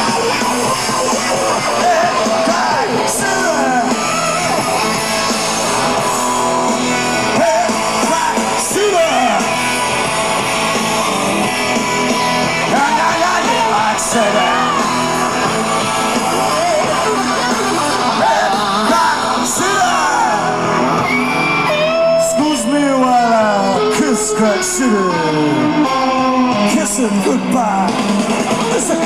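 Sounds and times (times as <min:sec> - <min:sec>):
electric guitars: 0:00.0 - 0:29.0
live rock band playing: 0:00.0 - 0:29.0.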